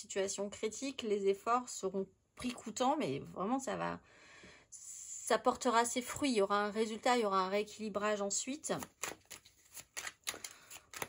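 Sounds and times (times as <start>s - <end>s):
cards being shuffled: 8.7s - 11.0s.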